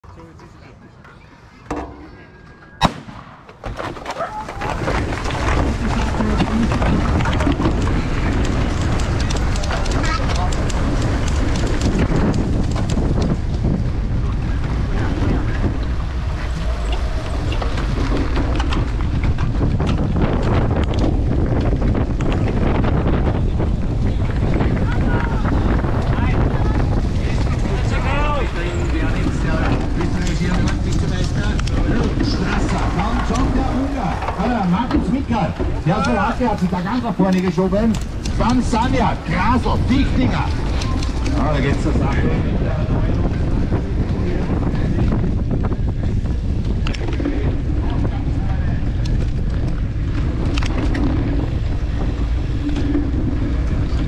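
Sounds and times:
tyres rumbling: 1.2 - 54.0
wind buffeting microphone: 2.1 - 54.0
sharp bang: 2.8 - 3.9
bike rattling over grass: 3.4 - 54.0.

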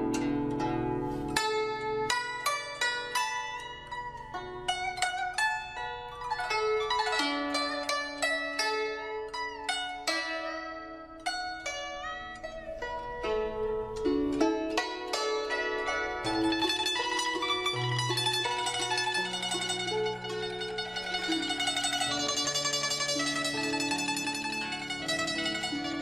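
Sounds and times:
plucked string melody: 0.0 - 26.0.

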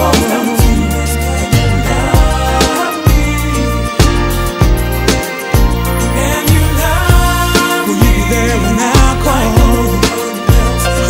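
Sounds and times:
other instruments: 0.0 - 11.0
steady drum beat: 0.0 - 11.0
sustained bass line: 0.0 - 11.0.

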